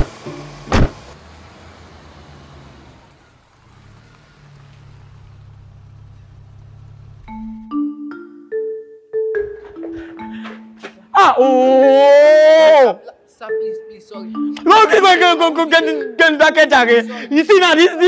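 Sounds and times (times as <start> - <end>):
car doors shutting: 0.0 - 1.2
car engine running: 0.0 - 7.6
mallet percussion music: 7.3 - 11.1, 13.4 - 16.8.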